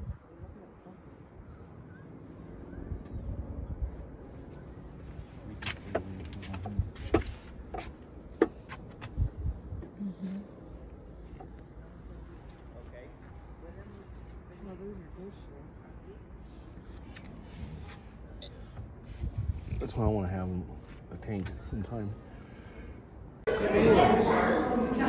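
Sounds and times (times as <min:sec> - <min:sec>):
wind rumble on microphone: 0:00.0 - 0:00.8, 0:02.7 - 0:04.4, 0:09.0 - 0:10.0, 0:18.9 - 0:20.1.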